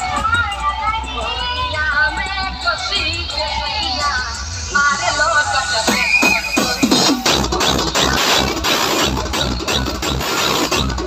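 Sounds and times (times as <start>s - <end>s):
heavy bass: 0.0s - 11.0s.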